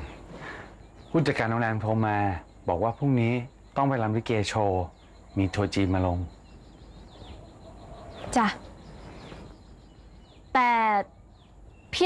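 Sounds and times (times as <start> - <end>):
faint bird chirps: 0.0 - 12.0.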